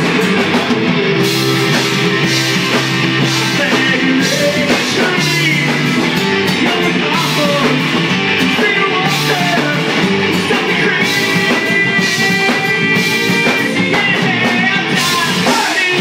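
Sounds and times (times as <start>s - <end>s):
bass guitar: 0.0s - 16.0s
drum kit with cymbal crashes: 0.0s - 16.0s
electric guitars: 0.0s - 16.0s
man singing: 2.2s - 16.0s.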